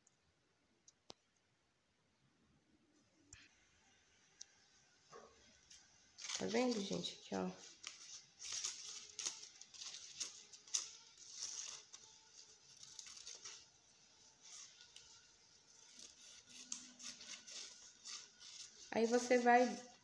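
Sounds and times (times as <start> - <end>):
paper rustling: 5.6 - 20.0
scissors snipping paper: 6.2 - 19.8.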